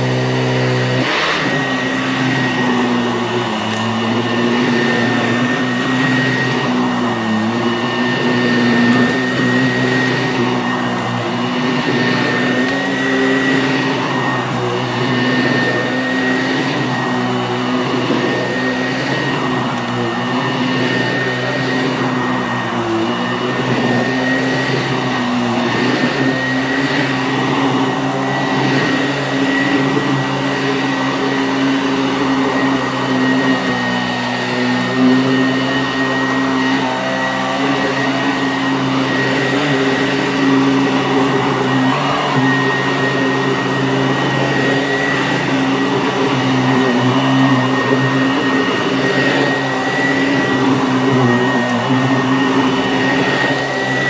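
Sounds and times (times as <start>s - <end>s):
vacuum cleaner running on carpet: 0.0s - 54.0s.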